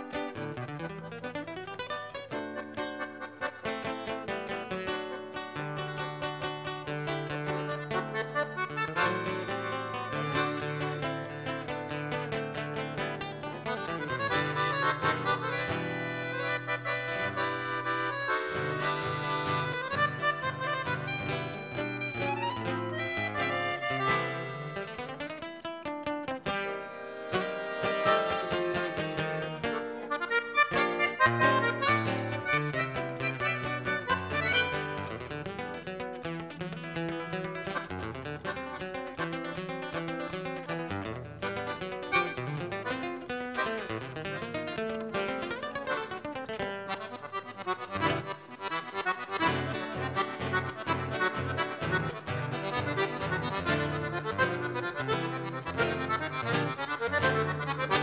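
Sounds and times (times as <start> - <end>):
button accordion melody: 0.0 - 25.4, 26.6 - 58.0
fingered acoustic guitar: 0.0 - 58.0.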